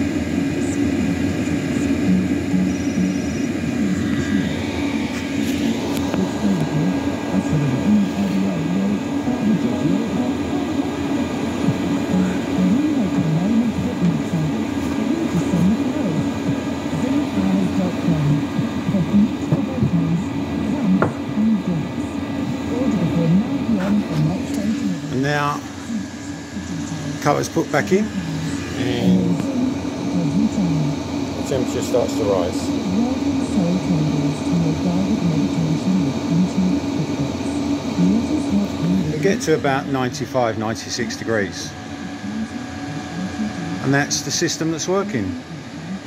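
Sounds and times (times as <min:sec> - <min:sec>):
air heater humming: 0:00.0 - 0:46.0
indistinct voices: 0:00.0 - 0:46.0.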